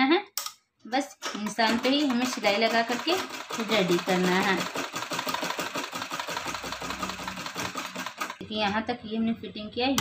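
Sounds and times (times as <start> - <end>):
sewing machine running: 1.6 - 8.4.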